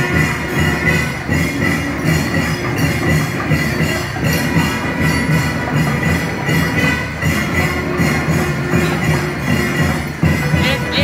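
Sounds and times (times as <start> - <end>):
drums and clattering percussion: 0.0 - 11.0.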